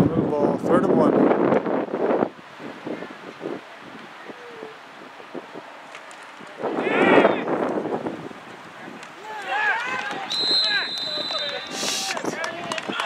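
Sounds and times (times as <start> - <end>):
wind on microphone: 0.0 - 5.8, 6.4 - 10.6
people shouting: 6.7 - 7.5, 9.2 - 13.0.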